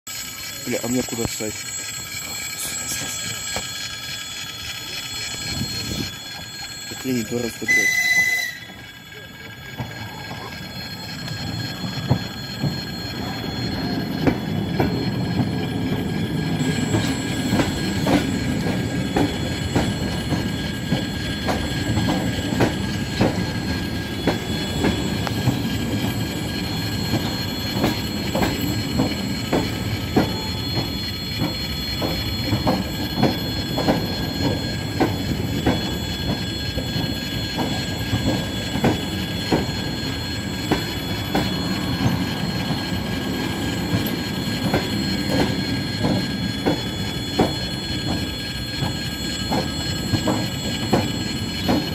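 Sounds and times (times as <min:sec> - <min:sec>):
train rumbling past: 0:00.1 - 0:51.9
wheels clicking over rail joints: 0:00.1 - 0:51.9
wheels squealing on rail: 0:00.1 - 0:51.9
train whistle: 0:07.6 - 0:09.0.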